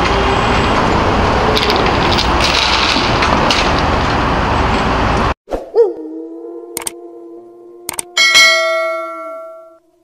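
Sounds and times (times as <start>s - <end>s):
bright bell ding: 8.2s - 9.8s
chime ringing: 8.2s - 9.8s.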